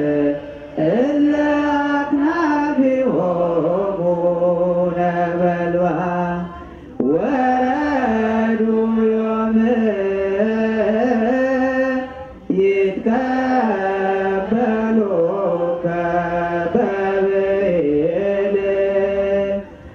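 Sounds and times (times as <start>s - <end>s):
unaccompanied hymn chanting: 0.0s - 19.9s.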